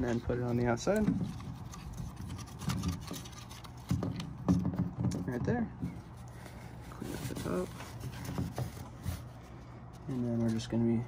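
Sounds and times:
steady low hum: 0.0 - 11.0
paper towel wiping plastic: 6.1 - 10.8.

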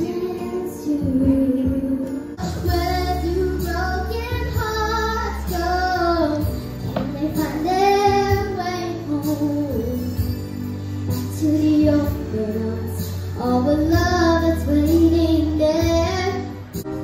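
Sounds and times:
girl singing into microphone: 0.0 - 16.9.

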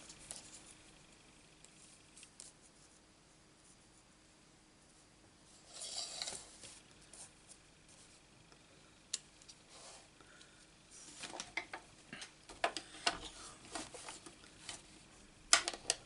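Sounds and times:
rustling scrape: 5.5 - 8.2.

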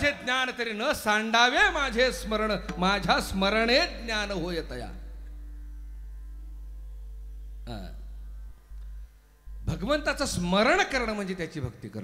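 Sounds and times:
electrical mains hum: 0.9 - 12.0
person speaking: 9.6 - 12.0.

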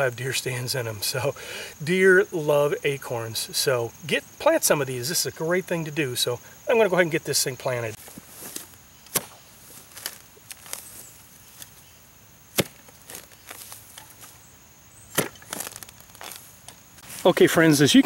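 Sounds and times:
soil scraping: 6.2 - 11.9, 12.5 - 14.5, 15.1 - 18.0
post-hole digger chopping into soil: 9.1 - 9.4, 12.5 - 13.2, 15.1 - 15.8.

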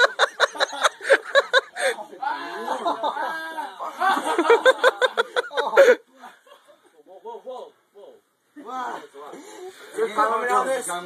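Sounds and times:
boys laughing: 0.0 - 7.0.

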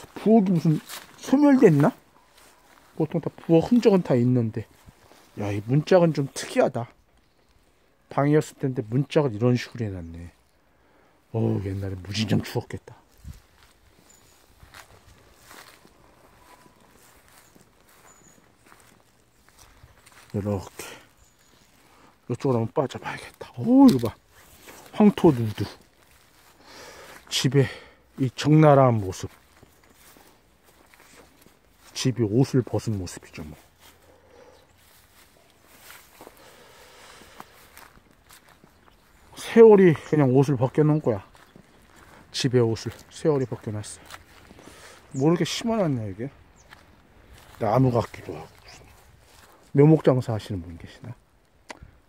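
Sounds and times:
faint footsteps: 0.0 - 8.0, 11.6 - 50.7.

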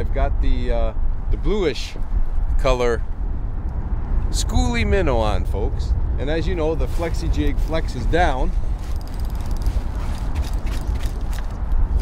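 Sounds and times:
wind buffeting microphone: 0.0 - 12.0.

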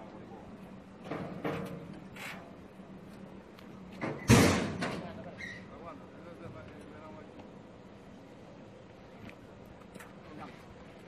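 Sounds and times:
motorcycle thudding on metal ramp: 4.0 - 5.1.

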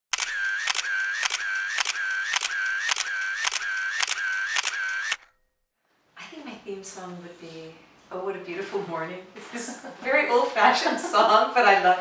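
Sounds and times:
camera shutter clicking: 0.1 - 5.2
camera motor-drive whirr: 0.1 - 5.3.

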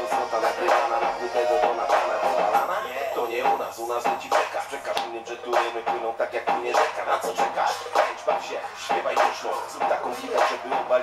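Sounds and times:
hip-hop track with voice: 0.0 - 11.0.

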